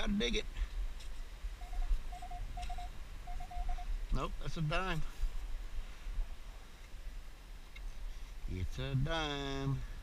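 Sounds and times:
metal detector beeping: 0:01.6 - 0:04.0.

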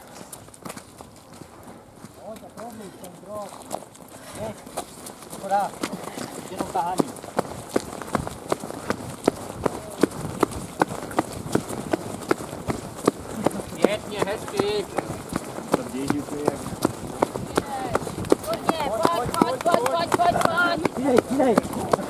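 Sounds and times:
running footsteps on wet pavement: 0:00.0 - 0:22.0.

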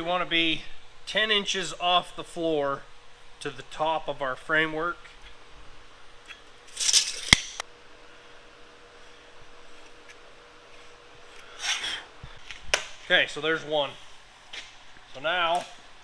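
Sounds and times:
faint shop hum: 0:00.0 - 0:16.0.

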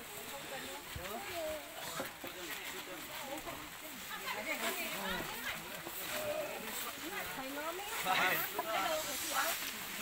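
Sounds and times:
people talking: 0:00.0 - 0:10.0
steady hiss: 0:07.8 - 0:10.0.

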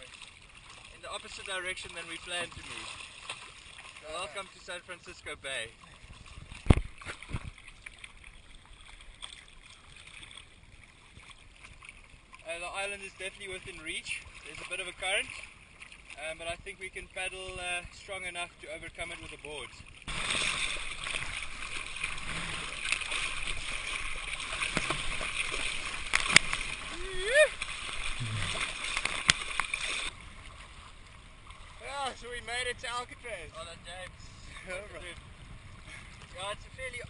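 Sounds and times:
water lapping against a surfboard: 0:00.0 - 0:37.0.

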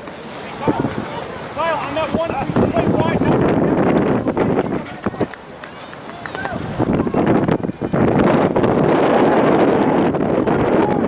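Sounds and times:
wind buffeting microphone: 0:00.0 - 0:11.0
faint voices calling out: 0:00.2 - 0:08.2.

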